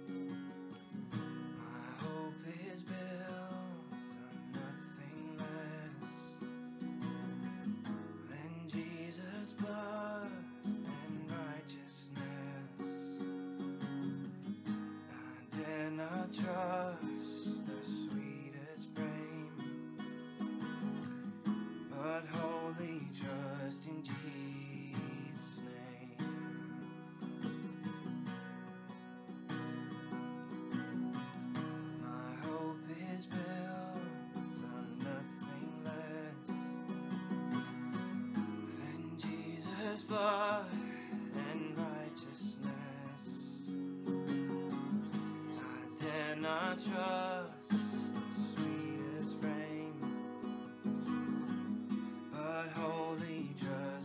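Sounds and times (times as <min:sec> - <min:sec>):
strummed acoustic guitar: 0:00.0 - 0:54.0
man singing worship song: 0:01.6 - 0:06.3, 0:08.3 - 0:13.1, 0:15.1 - 0:19.6, 0:21.9 - 0:26.2, 0:32.0 - 0:36.8, 0:38.8 - 0:43.6, 0:45.6 - 0:50.1, 0:52.4 - 0:54.0.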